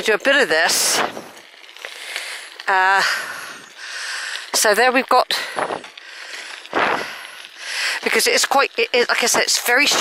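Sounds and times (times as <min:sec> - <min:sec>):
bicycle tyres on gravel: 0:00.0 - 0:10.0.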